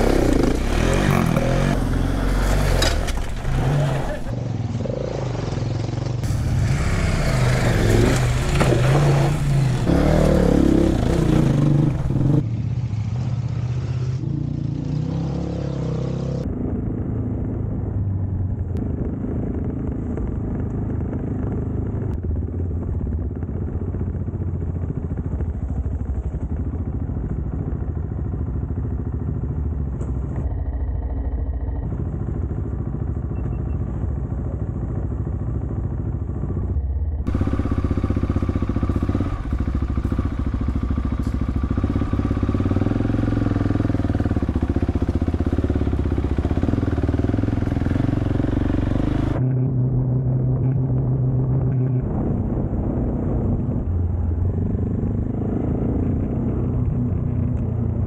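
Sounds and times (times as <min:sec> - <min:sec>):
motorcycle engine running: 0:00.0 - 0:15.0, 0:16.2 - 0:58.0.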